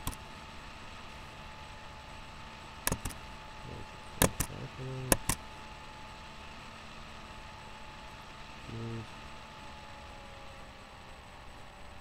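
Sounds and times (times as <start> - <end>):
microphone hiss and hum: 2.8 - 5.4
man humming briefly: 8.7 - 9.1.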